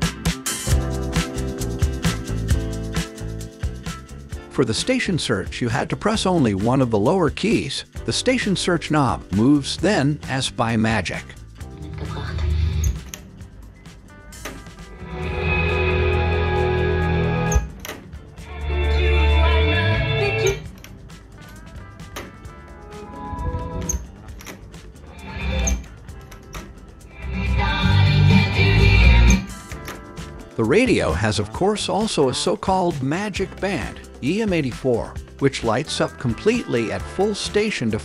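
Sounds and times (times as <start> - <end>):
music from radio speakers: 0.0 - 38.0.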